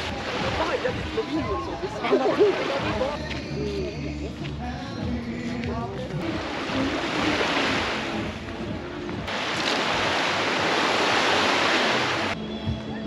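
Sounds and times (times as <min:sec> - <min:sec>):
waves washing onto beach: 0:00.0 - 0:03.2, 0:06.2 - 0:12.4.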